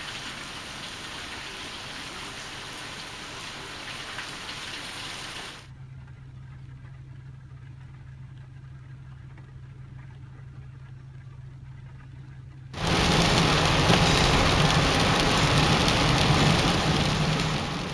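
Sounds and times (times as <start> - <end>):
tyres hissing on wet road: 0.0 - 5.7, 12.8 - 17.9
low hum inside car cabin: 5.7 - 17.9
low rumble of driving car: 5.7 - 17.9
rain ticking on windshield: 7.8 - 17.9.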